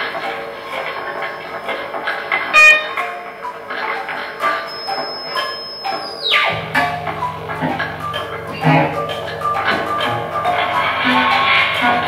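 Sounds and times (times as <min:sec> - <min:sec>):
guitar notes: 0:00.5 - 0:12.0
bright ringing struck note: 0:04.4 - 0:12.0
high tone swooping down: 0:06.3 - 0:12.0
low drone: 0:06.5 - 0:12.0.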